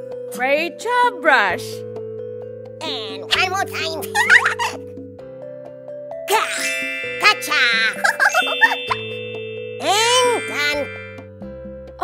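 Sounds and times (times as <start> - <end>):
background music: 0.0 - 12.0
cartoon squeak effect: 6.3 - 9.2, 9.8 - 11.2.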